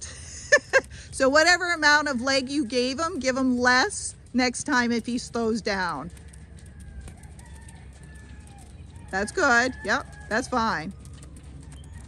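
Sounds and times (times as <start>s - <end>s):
distant bird calls: 6.1s - 12.0s.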